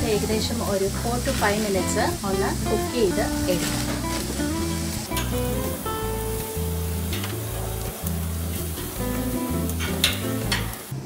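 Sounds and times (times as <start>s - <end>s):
background music bass notes: 0.0s - 11.0s
skewers sizzling on grill: 0.0s - 11.0s.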